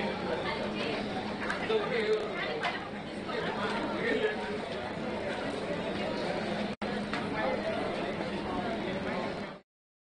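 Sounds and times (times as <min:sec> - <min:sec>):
indistinct chatter of people: 0:00.0 - 0:09.6.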